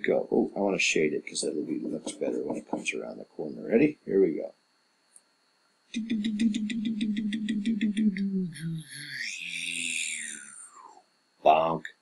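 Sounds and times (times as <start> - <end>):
man making vocal sound effects: 0.0 - 4.5.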